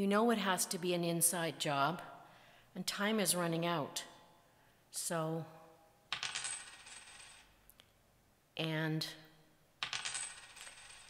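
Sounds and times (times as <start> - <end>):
coins clinking: 6.1 - 7.5, 9.8 - 11.0.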